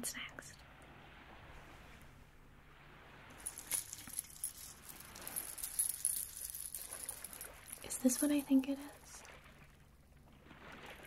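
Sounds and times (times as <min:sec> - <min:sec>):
beads clinking and jingling: 0:03.4 - 0:09.0.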